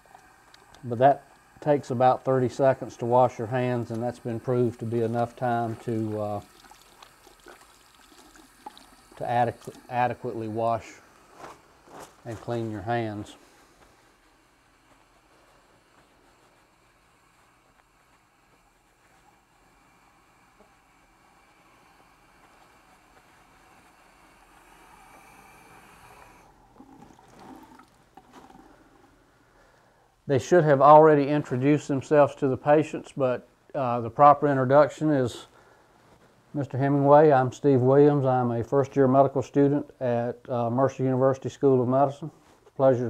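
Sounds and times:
wet hand sounds: 0:00.0 - 0:29.2
tap water running into sink: 0:04.7 - 0:10.0, 0:26.8 - 0:28.6
small ticks: 0:06.5 - 0:09.0.

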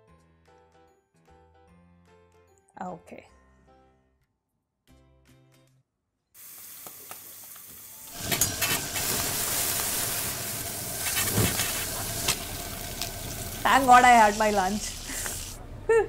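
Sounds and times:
food sizzling in a wok: 0:06.4 - 0:15.6.

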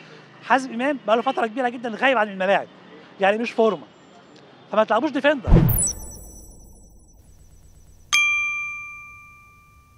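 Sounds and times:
bright bell-like ding: 0:05.7 - 0:09.8.

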